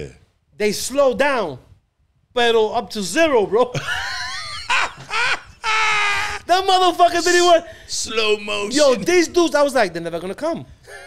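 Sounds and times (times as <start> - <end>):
men laughing hard: 3.8 - 6.8.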